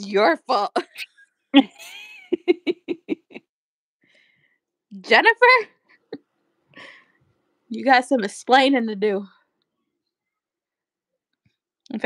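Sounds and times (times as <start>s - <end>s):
woman laughing hard: 1.6s - 3.4s.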